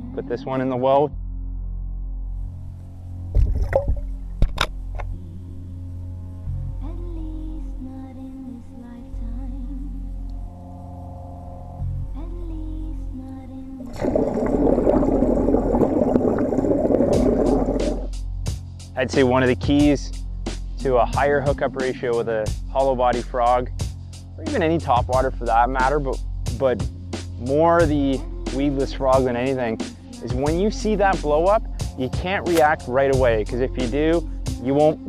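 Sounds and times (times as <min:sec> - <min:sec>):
ambient background music: 0:00.0 - 0:35.0
water splashes: 0:03.4 - 0:04.2, 0:13.8 - 0:18.1.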